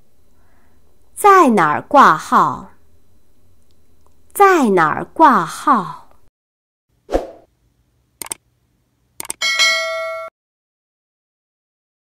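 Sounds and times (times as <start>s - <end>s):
quick clicks: 8.2s - 8.4s, 9.2s - 9.4s.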